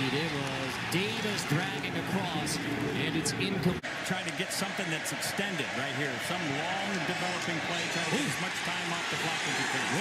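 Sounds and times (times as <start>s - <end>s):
men talking: 0.0s - 10.0s
stadium noise: 0.0s - 10.0s.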